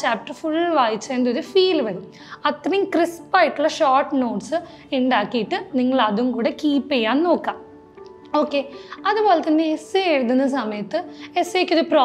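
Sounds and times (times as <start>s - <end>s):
woman speaking: 0.0s - 7.6s, 8.3s - 12.0s.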